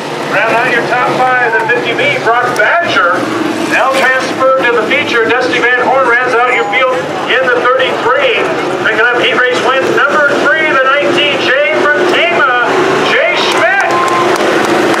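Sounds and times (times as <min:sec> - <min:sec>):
crowd voices talking: 0:00.0 - 0:15.0
race car engines rumbling: 0:00.0 - 0:15.0.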